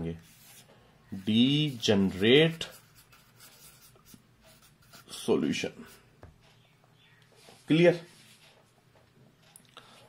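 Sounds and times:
marker pen scratching on paper: 0:00.2 - 0:06.1.

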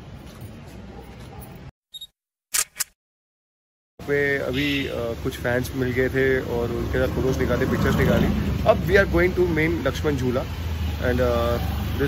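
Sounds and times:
outdoor street ambience: 0:00.0 - 0:03.0, 0:04.0 - 0:12.0
camera shutter double click: 0:02.5 - 0:03.0.

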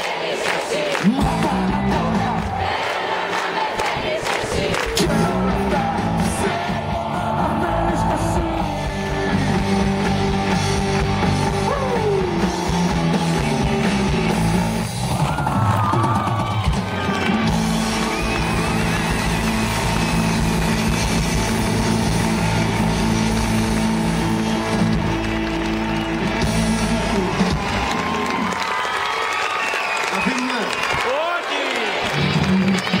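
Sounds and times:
audience cheering and shouting: 0:00.0 - 0:33.0
live rock band: 0:01.2 - 0:02.6, 0:04.8 - 0:28.9, 0:32.1 - 0:33.0.

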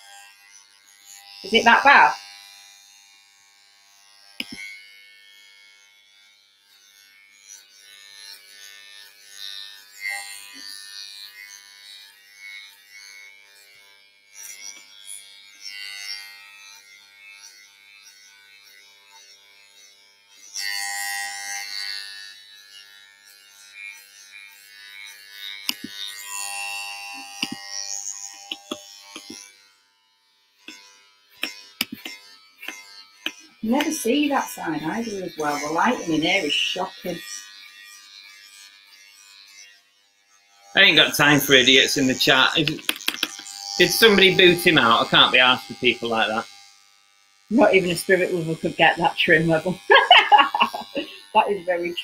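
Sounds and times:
electric hair clippers buzzing: 0:00.0 - 0:52.0.

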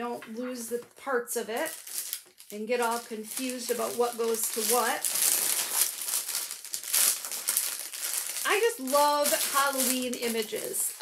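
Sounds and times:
plastic bag crinkling: 0:00.8 - 0:11.0.

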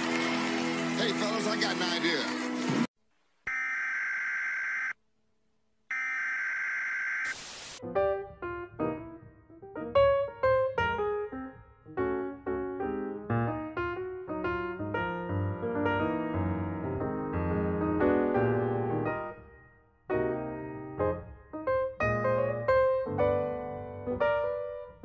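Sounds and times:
alarm tone blasts: 0:03.5 - 0:05.0, 0:05.9 - 0:07.4
piano notes: 0:07.8 - 0:25.0.

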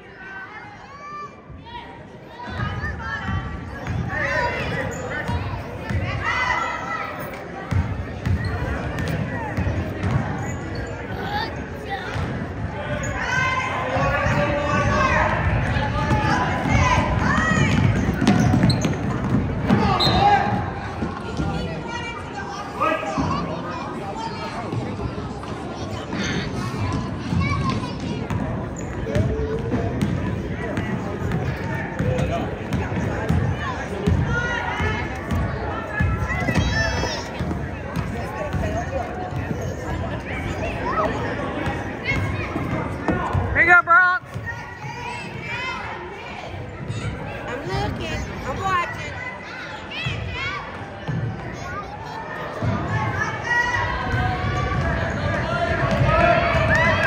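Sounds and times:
murmur of spectators: 0:00.0 - 0:57.0
basketball bouncing on wooden floor: 0:17.7 - 0:19.9.

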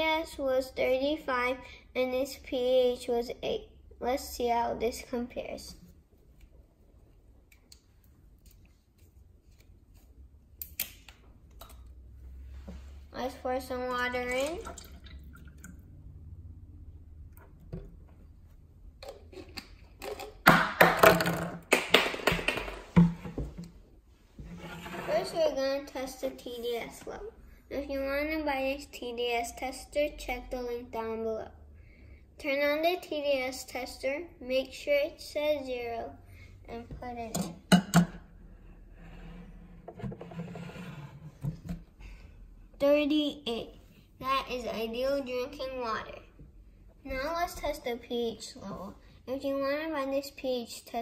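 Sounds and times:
rubbing and handling sounds: 0:08.1 - 0:10.4, 0:22.6 - 0:25.6.

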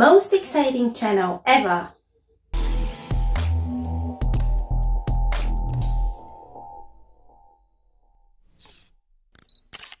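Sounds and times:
electronic music: 0:02.6 - 0:08.2.

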